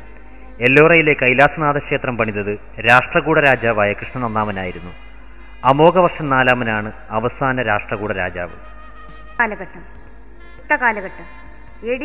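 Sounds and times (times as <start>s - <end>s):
man narrating: 0.4s - 5.0s, 5.6s - 8.6s.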